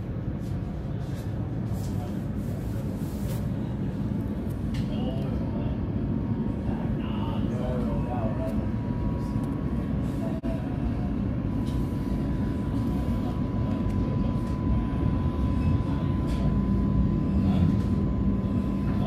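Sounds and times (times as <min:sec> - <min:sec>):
thin steady whine: 0:00.0 - 0:19.0.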